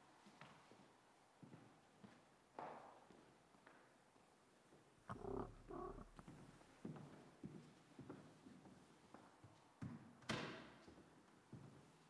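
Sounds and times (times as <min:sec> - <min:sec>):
low hum: 0:05.1 - 0:06.3.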